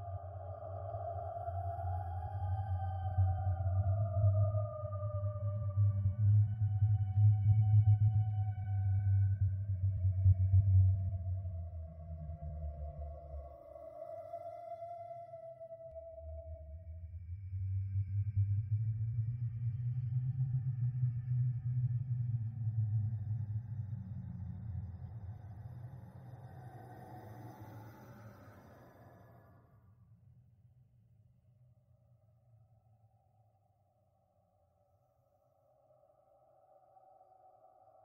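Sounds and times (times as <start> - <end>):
low horror drone: 22.5 - 29.8.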